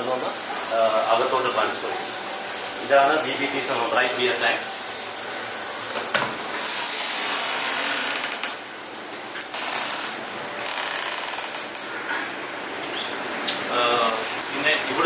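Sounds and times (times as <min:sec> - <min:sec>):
machinery rattling hiss: 0:00.0 - 0:08.8, 0:09.4 - 0:12.0, 0:14.0 - 0:15.0.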